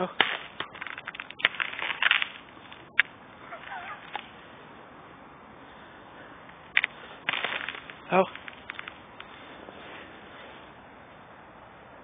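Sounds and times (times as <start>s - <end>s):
ice cracking: 0.0s - 4.3s, 6.8s - 9.3s.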